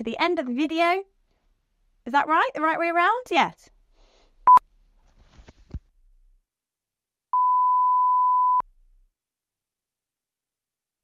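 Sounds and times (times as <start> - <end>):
electronic beep tone: 7.4 - 8.6.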